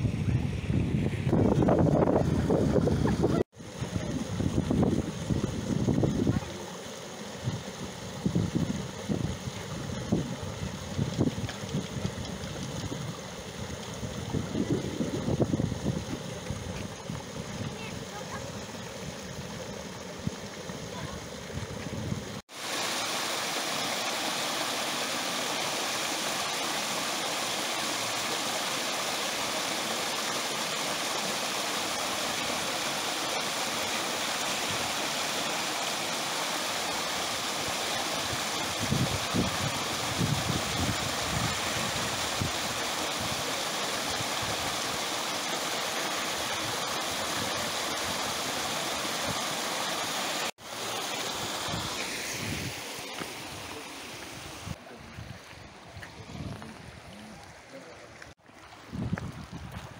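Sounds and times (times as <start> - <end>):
waterfall splashing into pool: 2.3 - 54.8.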